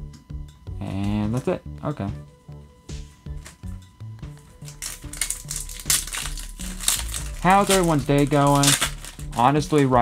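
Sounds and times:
background music with low beat: 0:00.0 - 0:10.0
foil wrapper crinkling: 0:04.4 - 0:10.0.

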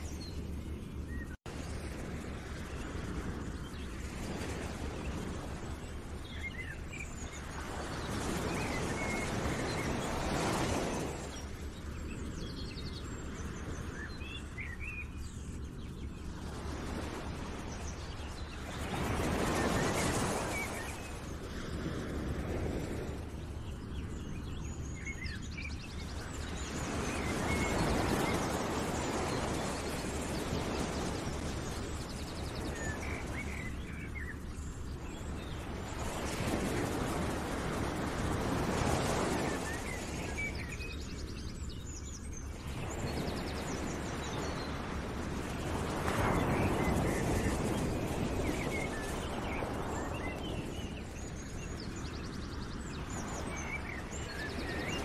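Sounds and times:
rushing waves: 0:00.0 - 0:55.0.

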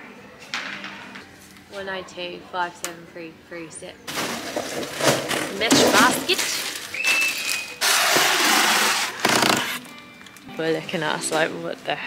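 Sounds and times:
plastic wrapping rustling: 0:04.1 - 0:10.4
cardboard scraping on cardboard: 0:07.8 - 0:09.8.

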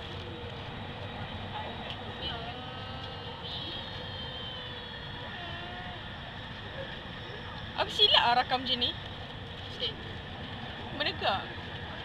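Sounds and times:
faint constant hum: 0:00.0 - 0:12.0
faint rising and falling tones: 0:00.0 - 0:12.0
train running rumble: 0:00.0 - 0:12.0.

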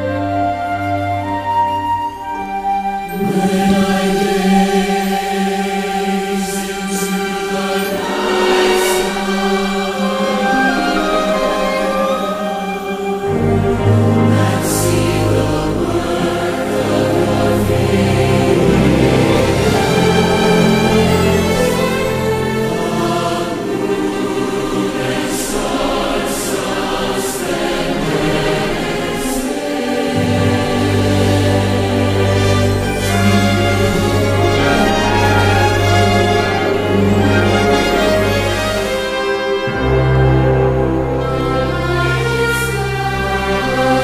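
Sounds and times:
choir singing sustained chords: 0:00.0 - 0:44.0
instrumental accompaniment: 0:00.0 - 0:44.0.

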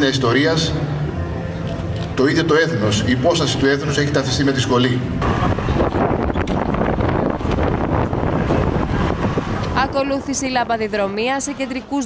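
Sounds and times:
street noise: 0:00.0 - 0:12.0
wind buffeting microphone: 0:05.2 - 0:11.4.

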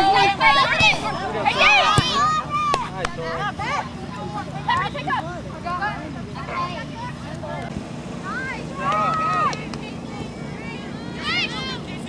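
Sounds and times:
spectators shouting: 0:00.0 - 0:05.6, 0:08.2 - 0:09.7.

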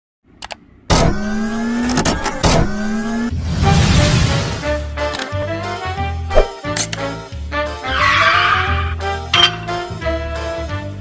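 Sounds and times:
rising electronic tone: 0:00.9 - 0:04.5
whoosh: 0:02.4 - 0:04.8.

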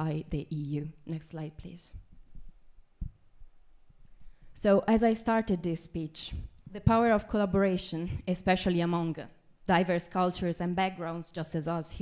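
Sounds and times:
soft low thuds: 0:01.9 - 0:04.0.

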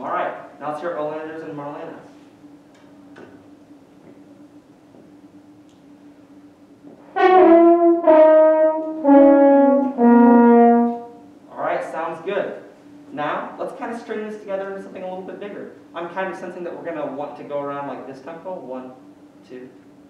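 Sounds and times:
brass blues lick: 0:07.0 - 0:11.2.

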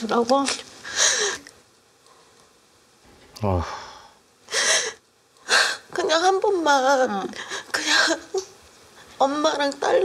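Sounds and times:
woman sobbing: 0:07.4 - 0:08.6.

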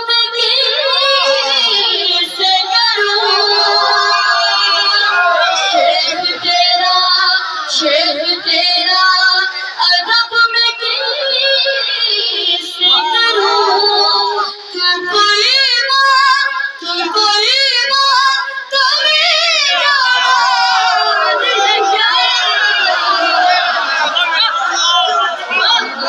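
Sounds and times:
boy singing over a pa: 0:00.0 - 0:26.0.

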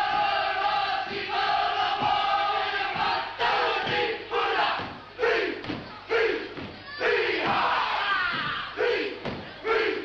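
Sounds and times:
group chanting in unison: 0:00.0 - 0:10.0
shouted phrases: 0:00.0 - 0:10.0.

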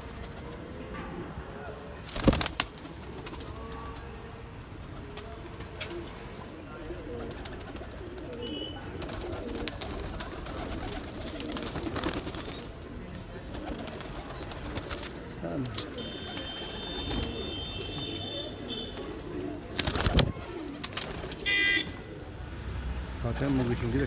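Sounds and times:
pigeons cooing: 0:05.0 - 0:22.9.

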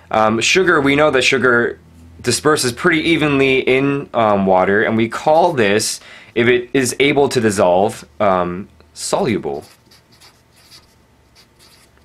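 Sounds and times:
marker scratching on paper: 0:09.6 - 0:12.0.

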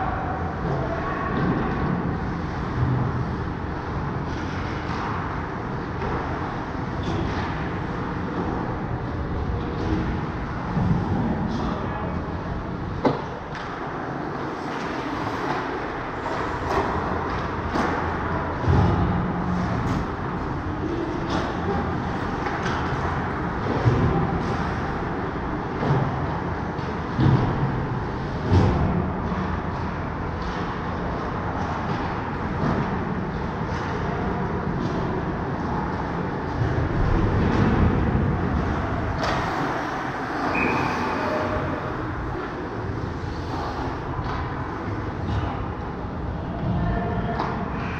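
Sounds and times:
steady rink hum: 0:00.0 - 0:47.9
clacks of sticks puck and skates: 0:00.4 - 0:11.9, 0:12.8 - 0:47.9.

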